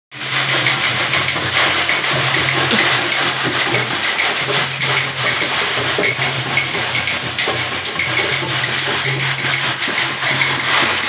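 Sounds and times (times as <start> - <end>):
frame drums tapping: 0.2 - 11.0
tambourines jingling: 0.2 - 11.0.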